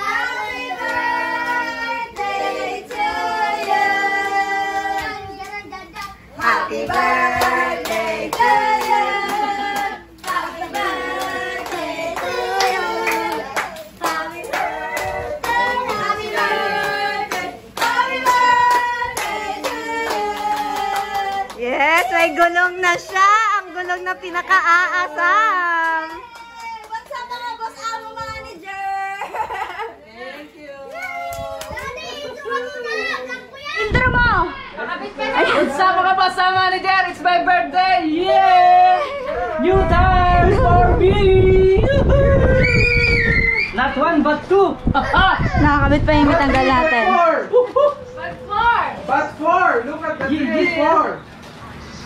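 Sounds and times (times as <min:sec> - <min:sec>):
people singing together: 0:00.0 - 0:22.8, 0:37.2 - 0:42.5
excited voices talking: 0:37.8 - 0:51.2.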